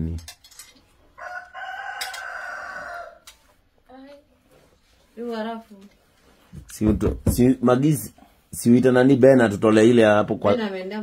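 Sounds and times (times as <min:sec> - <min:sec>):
rooster crowing: 0:01.1 - 0:03.5.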